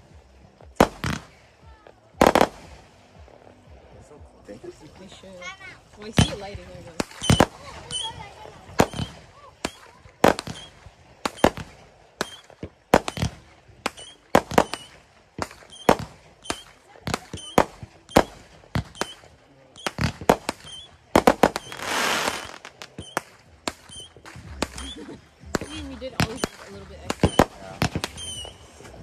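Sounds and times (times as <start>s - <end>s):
fireworks banging: 0.7s - 3.6s, 5.9s - 29.0s
firework hissing rush: 20.0s - 29.0s.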